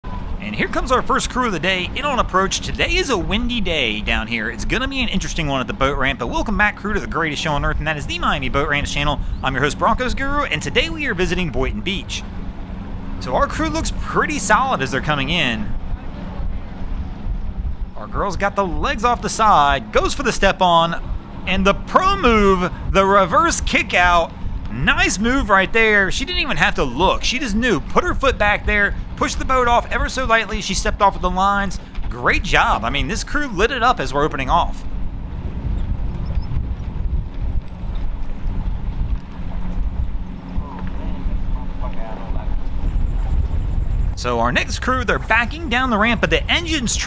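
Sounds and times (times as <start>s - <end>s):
outboard motor idling: 0.0s - 47.0s
wind buffeting microphone: 0.0s - 47.0s.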